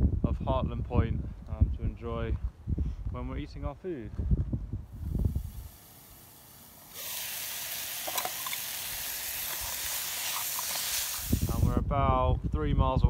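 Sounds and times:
wind rumble on microphone: 0.0 - 5.8, 11.1 - 13.0
food hissing in a pot: 5.0 - 11.7.

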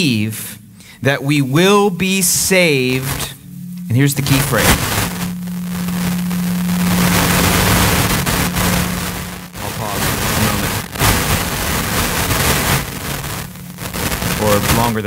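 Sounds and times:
microphone static and crackle: 0.0 - 15.0
steady hum: 0.0 - 15.0.

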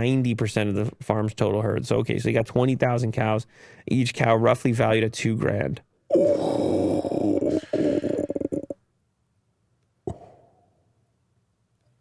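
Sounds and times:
man's drawn-out wordless vocal: 6.1 - 8.7.

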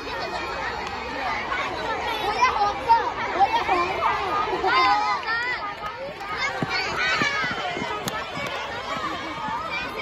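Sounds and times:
children shouting and cheering: 0.0 - 10.0
runners' footsteps on track: 3.4 - 10.0.

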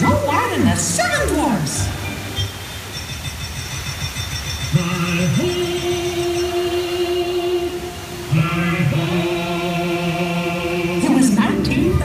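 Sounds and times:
choir singing held notes: 4.7 - 12.0.

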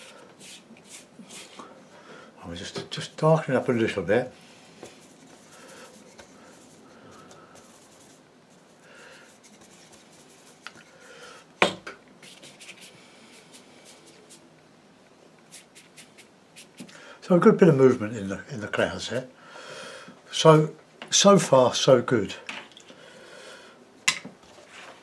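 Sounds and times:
brush scratching on paper: 0.0 - 1.6, 4.9 - 11.1, 12.2 - 14.4, 15.5 - 16.9.

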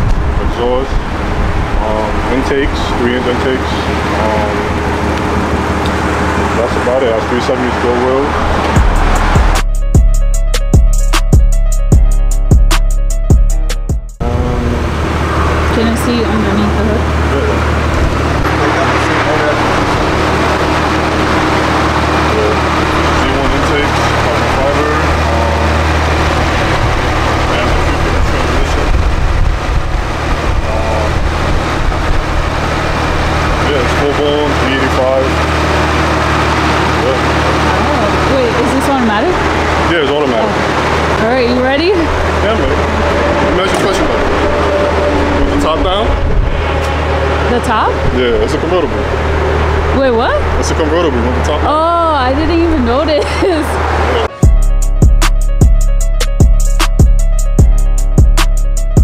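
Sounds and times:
car engine idling: 0.0 - 13.6, 14.2 - 59.0
people talking: 0.4 - 1.0, 1.8 - 4.8, 5.9 - 8.4, 14.2 - 15.0, 15.6 - 17.8, 18.4 - 20.6, 22.2 - 26.0, 26.6 - 29.2, 30.6 - 31.3, 33.6 - 35.6, 36.9 - 44.4, 45.4 - 46.2, 47.5 - 49.1, 49.9 - 54.4.

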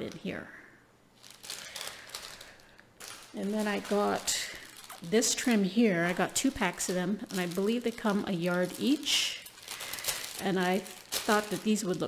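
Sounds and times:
plastic bag crinkling: 1.1 - 12.0.

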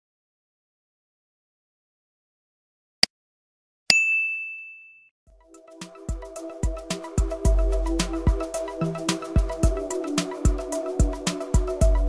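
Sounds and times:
notification bell ding: 3.9 - 5.1
rhythmic outro music: 5.4 - 12.0.

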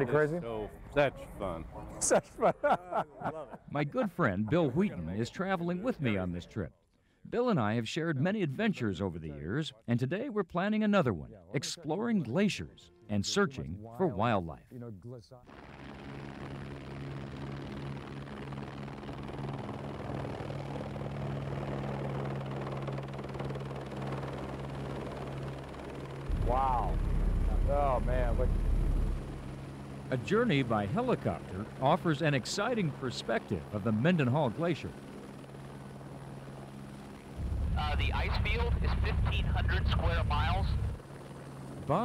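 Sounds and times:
helicopter engine and rotors droning: 15.5 - 42.0.

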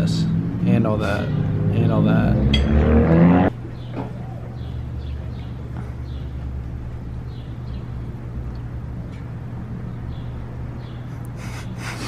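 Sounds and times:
low mechanical hum: 3.5 - 12.0.

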